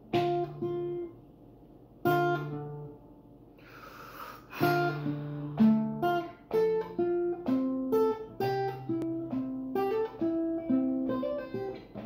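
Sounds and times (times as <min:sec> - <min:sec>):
acoustic guitar chords: 0:00.0 - 0:01.4, 0:02.0 - 0:03.1, 0:04.5 - 0:12.0
person breathing: 0:03.6 - 0:05.5.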